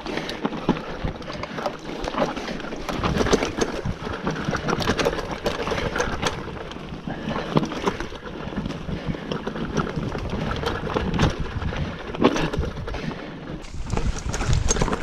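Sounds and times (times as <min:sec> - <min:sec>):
bike rattling and knocking: 0:00.0 - 0:15.0
wind rumble on microphone: 0:08.9 - 0:15.0
tyres crunching over gravel: 0:13.6 - 0:15.0.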